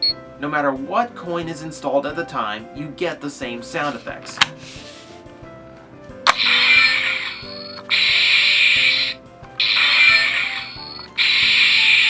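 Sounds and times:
faint background music: 0.0s - 12.0s
hissing electronic noise bursts: 6.3s - 12.0s
toy switch click: 6.3s - 12.0s.

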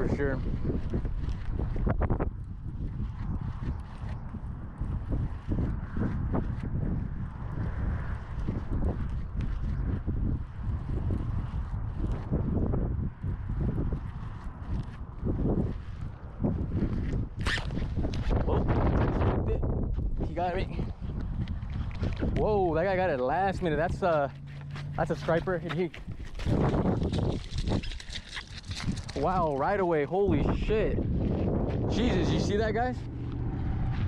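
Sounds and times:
wind buffeting microphone: 0.0s - 34.0s
hand rustling against camera: 24.3s - 29.6s.

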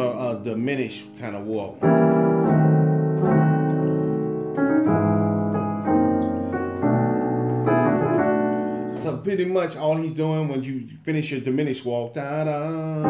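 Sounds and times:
piano chords on keyboard: 0.0s - 10.6s, 12.4s - 13.0s.

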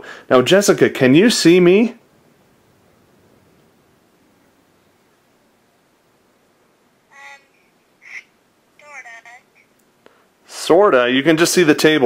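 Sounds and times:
woman's voice through phone speaker: 7.1s - 9.7s.

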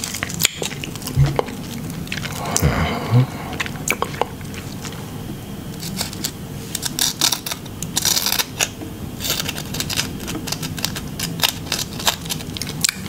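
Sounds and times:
potato chips crackling: 0.0s - 2.6s, 5.8s - 13.0s.

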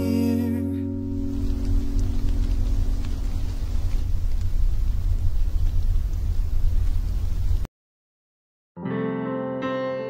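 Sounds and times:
sustained song notes: 0.0s - 4.0s
low uneven rumble: 0.1s - 7.7s.

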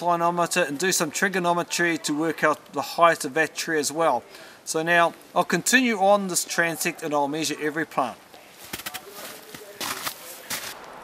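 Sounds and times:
footsteps in snow and undergrowth: 8.4s - 11.0s.

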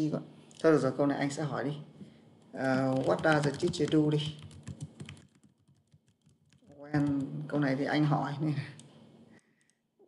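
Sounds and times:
computer keyboard typing: 2.6s - 7.5s.

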